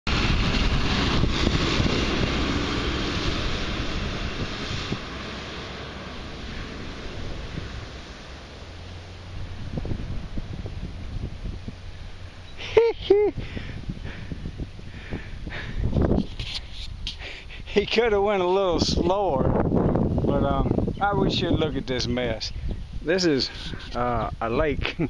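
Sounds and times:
distant rushing water: 0:00.1 - 0:16.1
truck passing by: 0:00.1 - 0:16.1.

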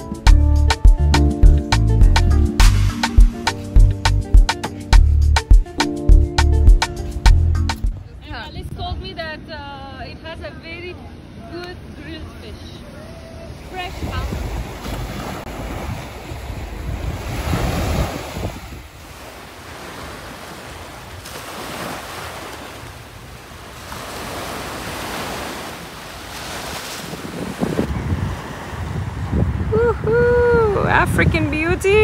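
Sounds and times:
wind gusting on microphone: 0:07.9 - 0:09.6, 0:13.4 - 0:19.3, 0:23.1 - 0:32.0
small waves washing on beach: 0:13.5 - 0:29.8.

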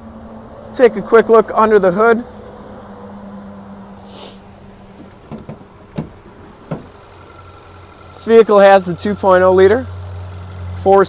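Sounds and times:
car engine idling hum: 0:00.0 - 0:11.0
car hood latch clicks and knocks: 0:04.9 - 0:07.0.

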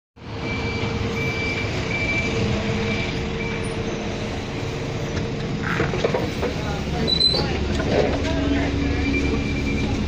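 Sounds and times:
diesel engine idling: 0:00.2 - 0:10.0
electronic warning beeps: 0:00.4 - 0:03.8, 0:08.8 - 0:10.0.

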